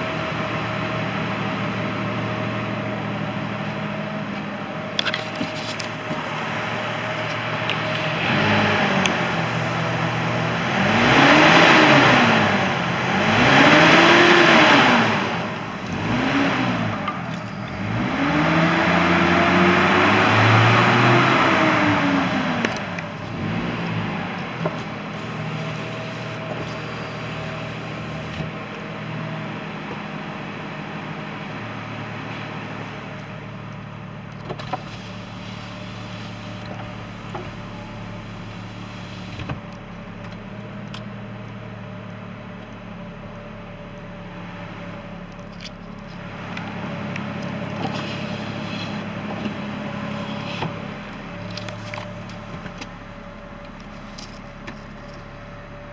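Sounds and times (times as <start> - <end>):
engine revving and idling: 0.0 - 55.9.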